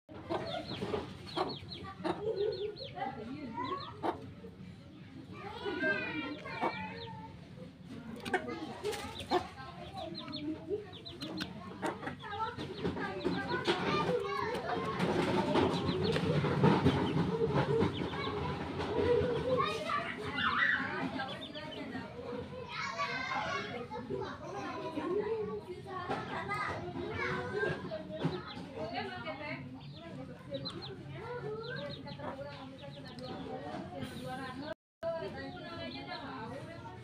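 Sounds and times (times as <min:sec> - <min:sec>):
chickens clucking: 0:00.1 - 0:34.8
people's voices: 0:00.1 - 0:37.0.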